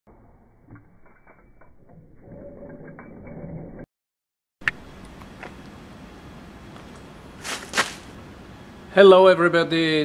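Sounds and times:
steady mechanical hum: 0:04.6 - 0:10.0.

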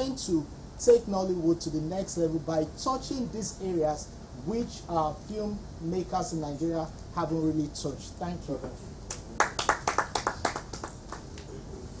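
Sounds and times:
small audience clapping: 0:09.1 - 0:11.5.

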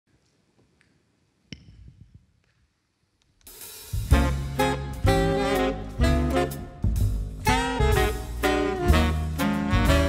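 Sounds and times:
big band playing: 0:03.5 - 0:10.0.

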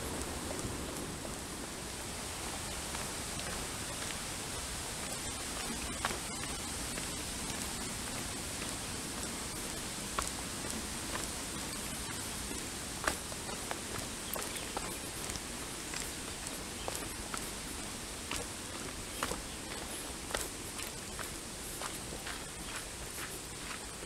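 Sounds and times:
steady outdoor hiss: 0:00.0 - 0:24.0.

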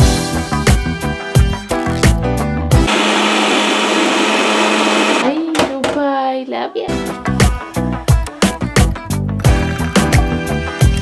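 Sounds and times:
blender motor whirring: 0:02.8 - 0:05.3.

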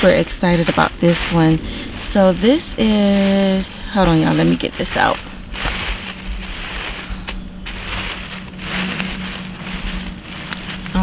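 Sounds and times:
plastic bag rustling and crinkling: 0:00.0 - 0:11.0.

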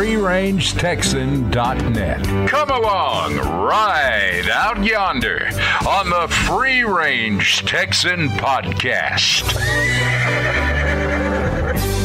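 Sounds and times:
background music with bass line: 0:00.0 - 0:12.0
horse whinny: 0:09.4 - 0:12.0.

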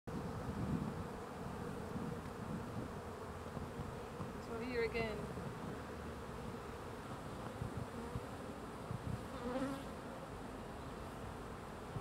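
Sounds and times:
honeybees buzzing: 0:00.1 - 0:12.0.

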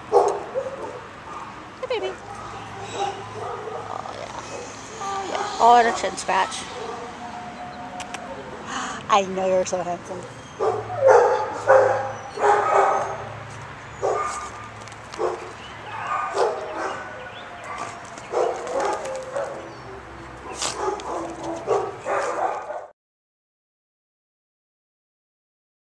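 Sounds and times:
small dog barking and yipping: 0:02.2 - 0:07.5, 0:10.5 - 0:13.4, 0:14.0 - 0:19.8, 0:20.5 - 0:22.9.

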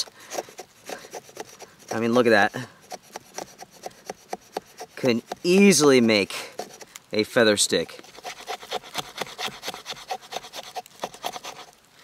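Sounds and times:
axe blade scraping wood: 0:00.0 - 0:07.0, 0:07.6 - 0:11.8.

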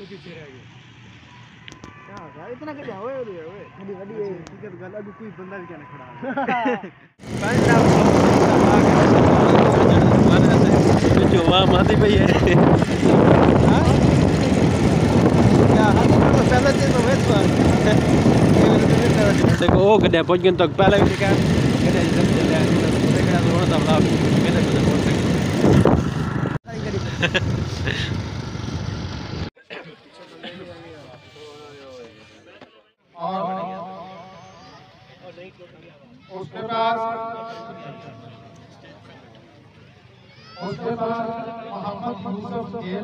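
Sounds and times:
men talking: 0:00.0 - 0:00.6, 0:02.0 - 0:25.6, 0:26.6 - 0:28.2, 0:29.6 - 0:39.7, 0:40.6 - 0:43.0
voices: 0:00.0 - 0:25.6
motorcycle running: 0:07.2 - 0:29.5
wind rushing on microphone: 0:07.2 - 0:29.5
man speaking: 0:15.6 - 0:25.4.

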